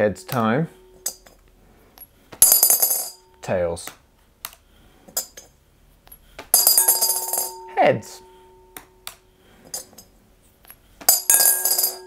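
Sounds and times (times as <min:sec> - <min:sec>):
glass bowl ringing: 0:00.0 - 0:01.3, 0:06.6 - 0:09.0, 0:11.1 - 0:12.0
coin clattering in glass bowl: 0:02.4 - 0:03.2, 0:06.6 - 0:07.6, 0:11.1 - 0:12.0.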